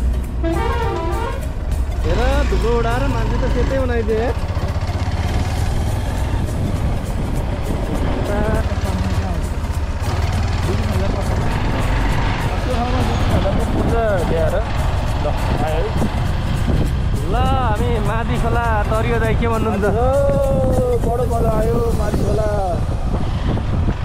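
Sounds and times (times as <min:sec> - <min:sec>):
motorcycle engine running: 0:00.6 - 0:20.3
wind rumble on microphone: 0:04.6 - 0:24.0.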